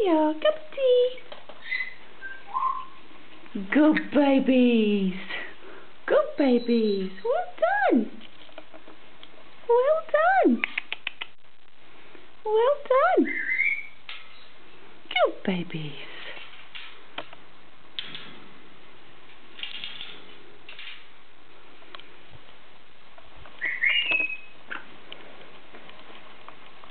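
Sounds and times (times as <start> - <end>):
parrot whistling: 1.6 - 3.0, 13.2 - 14.0, 23.6 - 24.6
quick sharp clicks: 10.6 - 11.4
parrot talking: 12.7 - 13.9.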